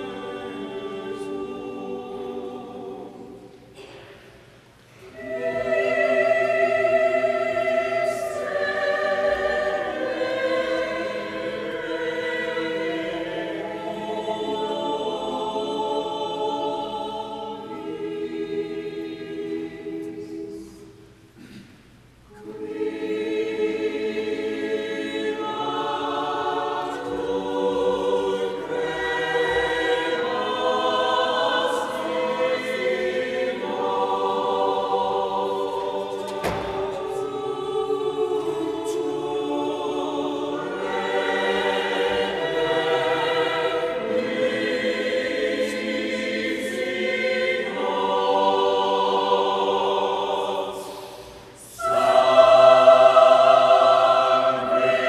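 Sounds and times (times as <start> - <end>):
choir singing in a church: 0.0 - 55.0.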